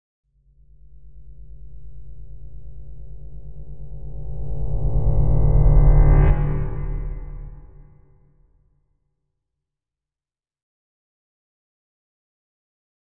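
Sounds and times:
low pulsing synth drone: 0.4s - 8.2s.

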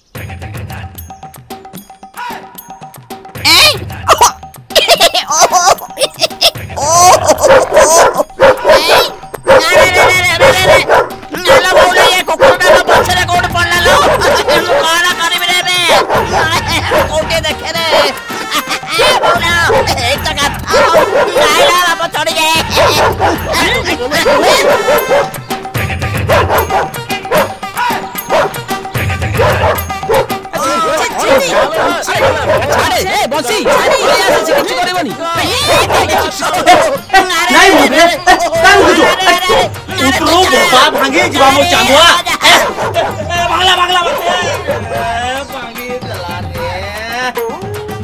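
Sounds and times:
background music: 0.0s - 48.0s
dog barking: 4.1s - 4.4s, 7.3s - 15.0s, 15.8s - 17.2s, 17.9s - 22.0s, 22.6s - 25.5s, 26.2s - 28.7s, 29.3s - 38.0s, 38.6s - 39.7s, 40.3s - 45.2s.

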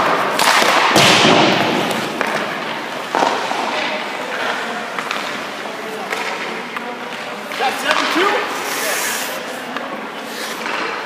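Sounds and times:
skate blades scraping on ice: 7.7s - 11.0s.

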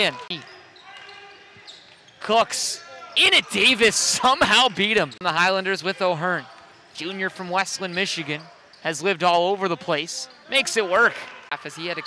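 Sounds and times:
basketball game court sounds: 0.0s - 12.0s
commentator speaking: 2.3s - 6.4s.

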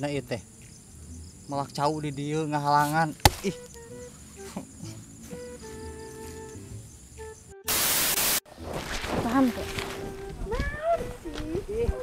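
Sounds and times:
burst of static hiss: 7.7s - 8.4s.

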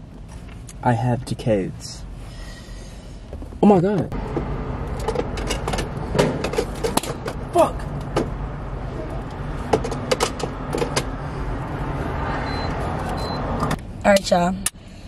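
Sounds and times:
steady low rumble: 0.0s - 15.0s
short high beeps: 12.4s - 13.4s.

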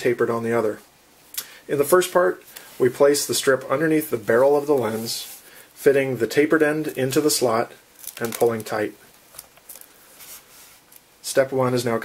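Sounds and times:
velcro strap rustling: 8.0s - 11.1s.

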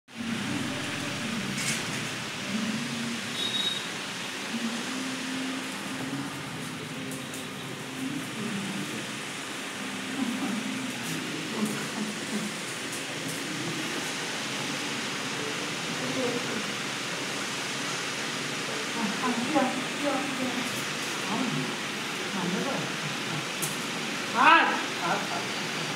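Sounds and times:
muffled voices talking: 0.2s - 3.5s, 4.4s - 17.0s, 18.4s - 25.9s.

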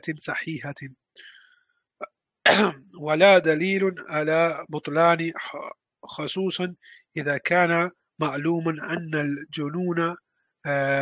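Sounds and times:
faint breath: 1.2s - 1.7s, 6.8s - 7.2s
man coughing: 2.5s - 2.8s.

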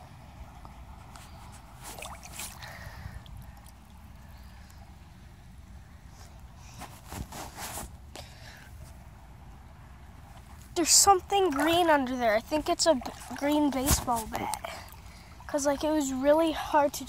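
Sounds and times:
creek water sloshing and splashing: 1.0s - 4.8s, 10.4s - 17.0s.

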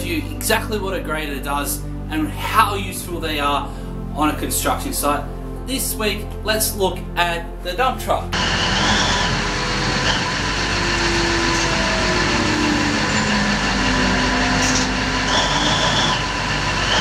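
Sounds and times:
truck diesel engine running: 8.4s - 17.0s.

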